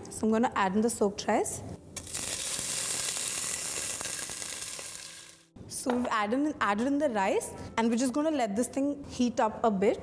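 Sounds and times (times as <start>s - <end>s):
rice sizzling in hot fat: 2.0s - 5.4s.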